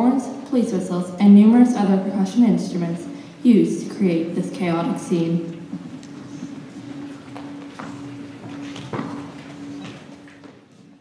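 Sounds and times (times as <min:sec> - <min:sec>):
footsteps on wooden stage: 0:05.5 - 0:11.0.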